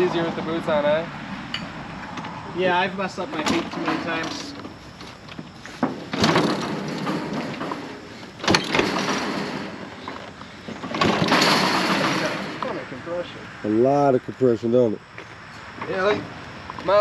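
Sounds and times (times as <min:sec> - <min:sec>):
dirt bike kick-start chuffs: 0:06.1 - 0:12.5.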